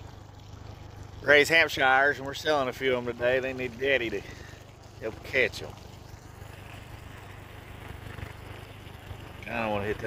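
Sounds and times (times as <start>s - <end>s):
faint water wash: 0.0s - 10.0s
outboard motor idling: 0.0s - 10.0s.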